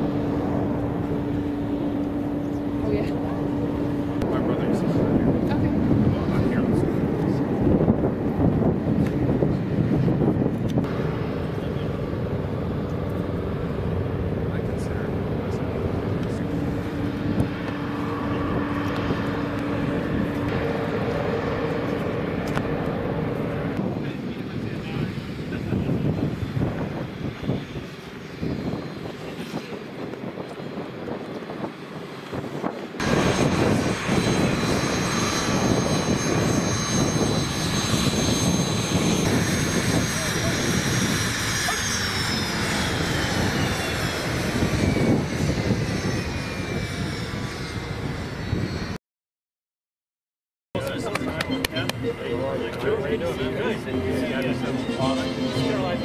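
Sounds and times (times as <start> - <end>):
aircraft engines running: 0.0 - 49.0, 50.8 - 56.0
high engine whine: 0.0 - 49.0, 50.8 - 56.0
wind noise: 0.0 - 49.0.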